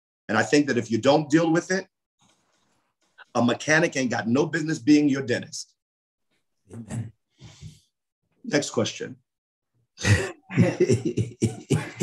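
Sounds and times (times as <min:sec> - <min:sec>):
man laughing: 0:10.0 - 0:12.0.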